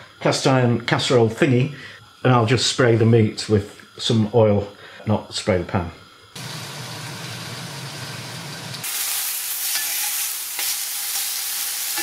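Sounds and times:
meat sizzling in oil: 0:06.3 - 0:12.0.

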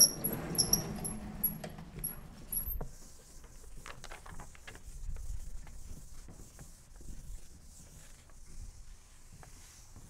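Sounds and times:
chalk on a blackboard: 0:02.0 - 0:10.0.

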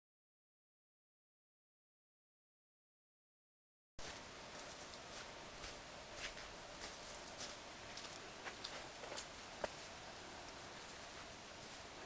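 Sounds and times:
footsteps crunching on snow: 0:04.0 - 0:10.0
background hiss: 0:04.0 - 0:12.0.

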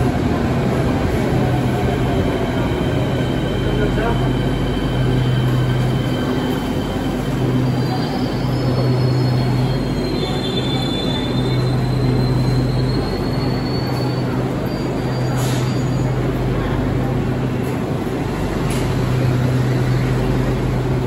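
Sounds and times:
train rumbling slowly: 0:00.0 - 0:21.0
faint wheel squeal: 0:03.1 - 0:16.2.

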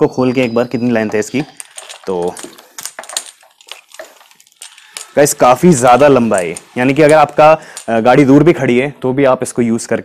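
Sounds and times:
hose clicks and rustles: 0:01.2 - 0:08.4.

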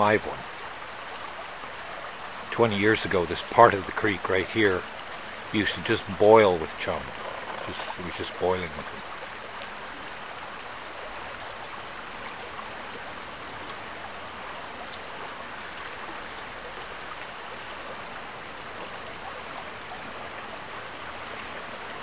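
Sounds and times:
creek running over rocks: 0:00.0 - 0:22.0.

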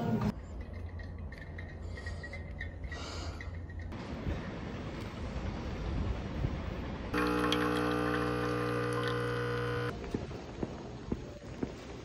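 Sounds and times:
steady hum with overtones: 0:07.2 - 0:09.9.

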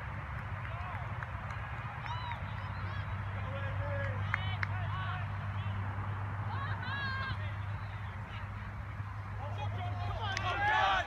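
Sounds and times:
distant shouts of players: 0:09.4 - 0:11.0.

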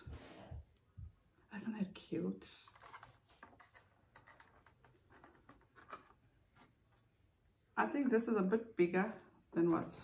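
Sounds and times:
plastic palette rubbing and clicking: 0:02.7 - 0:07.1
woman's voice: 0:07.8 - 0:10.0.

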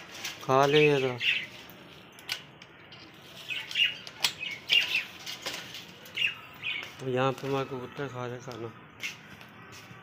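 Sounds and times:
caged birds chirping: 0:00.0 - 0:10.0.

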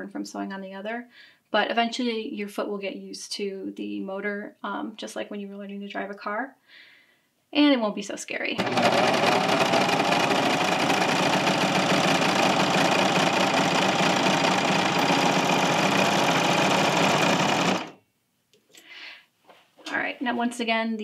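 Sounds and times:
serger motor sewing: 0:08.6 - 0:18.0.

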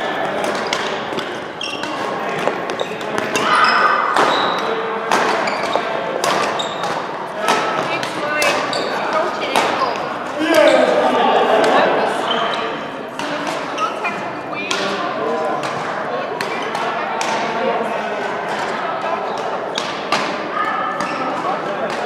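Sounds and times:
racket striking shuttlecock: 0:00.3 - 0:10.1
shoe squeaks: 0:00.6 - 0:07.1, 0:07.8 - 0:11.0, 0:12.2 - 0:12.8, 0:13.7 - 0:14.2, 0:20.6 - 0:21.5.

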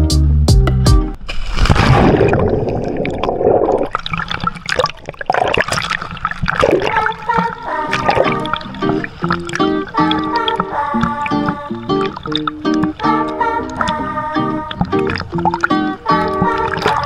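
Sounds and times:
background music with a beat: 0:00.0 - 0:01.2
splash into water: 0:01.3 - 0:13.1, 0:16.4 - 0:17.0
water rushing and bubbling: 0:01.3 - 0:17.0.

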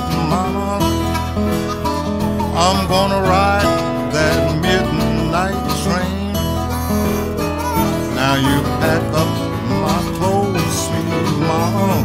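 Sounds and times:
fingerpicked acoustic guitar: 0:00.0 - 0:12.0
harmonica bent notes: 0:00.0 - 0:12.0.

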